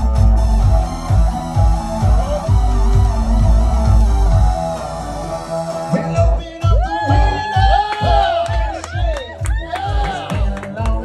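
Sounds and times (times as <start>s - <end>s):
steady kick drum: 0.0s - 4.9s, 6.2s - 11.0s.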